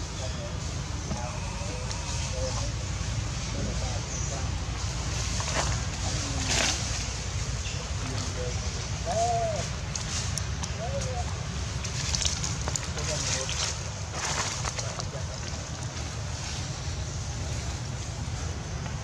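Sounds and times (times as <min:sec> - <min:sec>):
monkey coo calls: 0:00.0 - 0:02.9, 0:08.8 - 0:09.9, 0:10.6 - 0:11.4
rustling: 0:11.8 - 0:18.9.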